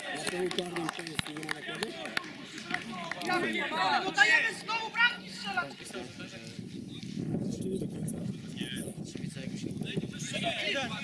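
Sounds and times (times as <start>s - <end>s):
footballers shouting: 0.0s - 6.0s, 10.2s - 11.0s.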